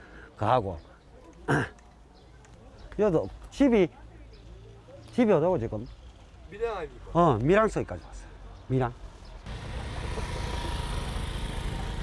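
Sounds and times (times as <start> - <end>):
scooter engine running: 9.5 - 12.0.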